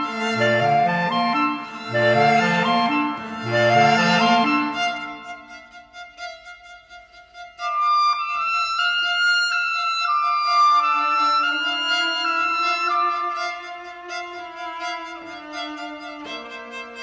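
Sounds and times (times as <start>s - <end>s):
clarinets playing held notes: 0.0s - 5.5s
violin: 0.0s - 17.0s.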